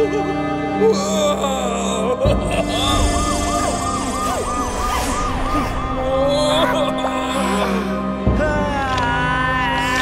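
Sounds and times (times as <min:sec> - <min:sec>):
ambulance siren wailing: 0:02.3 - 0:08.0.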